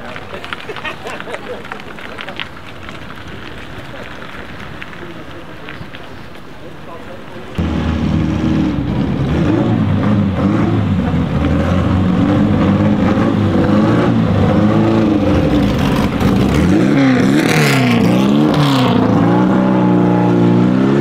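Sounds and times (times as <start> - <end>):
car engine accelerating: 7.5 - 21.0.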